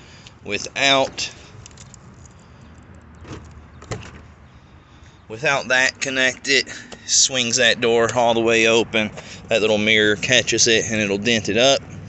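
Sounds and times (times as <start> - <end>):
keys jangling: 1.5 - 2.4.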